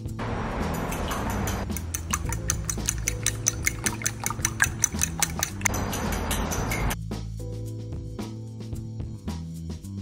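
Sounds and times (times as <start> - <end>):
background music: 0.0 - 10.0
fork beating eggs in bowl: 1.6 - 5.7.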